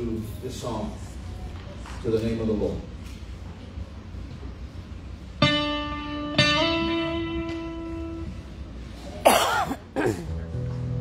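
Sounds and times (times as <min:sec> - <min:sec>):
electric guitar note: 0:05.4 - 0:08.5
loud cough: 0:09.2 - 0:10.3.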